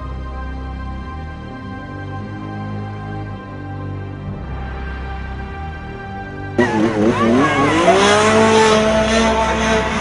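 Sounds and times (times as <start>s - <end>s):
engine revving: 6.6s - 10.0s.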